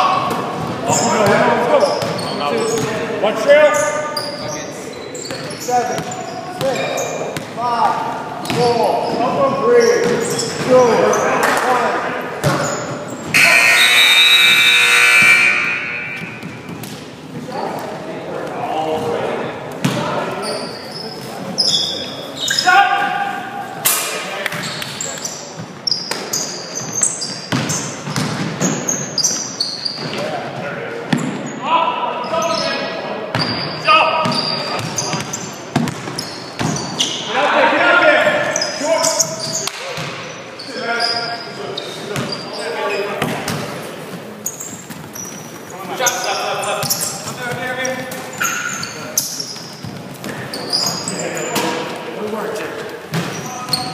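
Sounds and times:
sneakers squeaking: 0.0s - 18.1s, 19.8s - 23.6s, 24.2s - 37.4s, 38.2s - 53.9s
players shouting: 13.3s - 16.4s.

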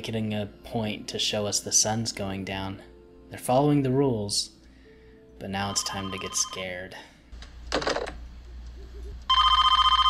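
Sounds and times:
electronic telephone ring: 5.7s - 6.7s, 9.3s - 10.0s.

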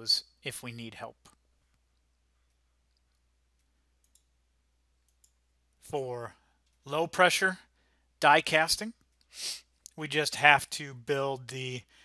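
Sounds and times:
faint computer mouse clicks: 2.9s - 4.3s, 5.0s - 5.4s.

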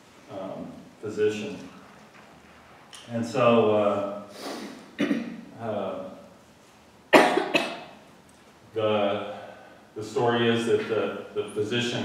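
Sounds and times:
man coughing: 5.0s - 5.4s, 7.1s - 7.9s.

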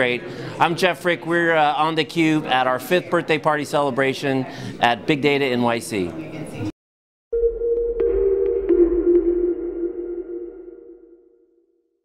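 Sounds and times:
held electronic chord: 7.4s - 11.4s.

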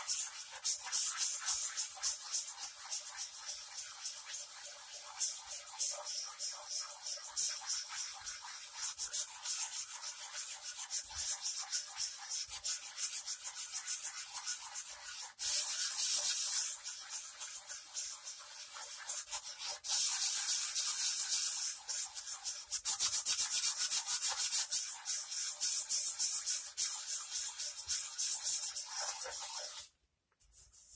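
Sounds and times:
sandpaper rubbing on wood: 0.0s - 30.9s.

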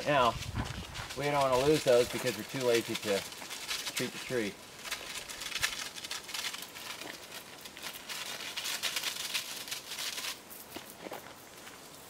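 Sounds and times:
garden sprayer hissing: 0.0s - 10.9s.

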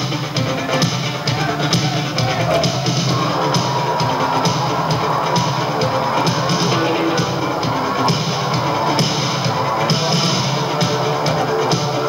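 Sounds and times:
drum kit steady beat: 0.0s - 12.0s
live band playing: 0.0s - 12.0s.

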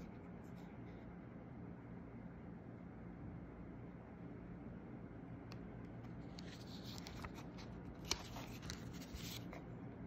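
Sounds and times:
paper pages rustling: 6.1s - 9.7s.

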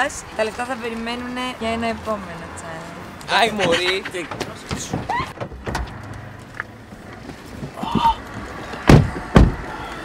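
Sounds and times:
car interior hum: 0.4s - 10.0s.

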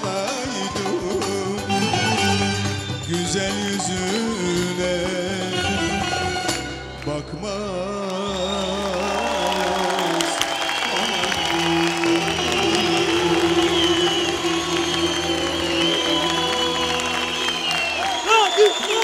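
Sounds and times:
band accompaniment: 0.0s - 8.1s, 8.7s - 19.0s
audience applauding: 8.0s - 19.0s.

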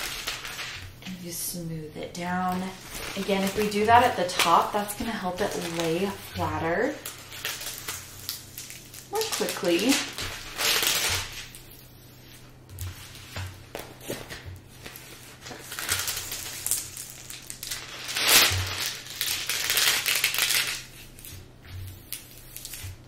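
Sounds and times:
plastic film crinkling: 0.0s - 1.2s, 2.1s - 23.0s.

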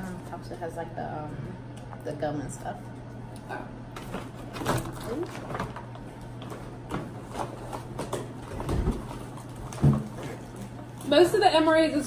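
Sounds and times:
plastic packaging crinkling: 4.0s - 11.7s.

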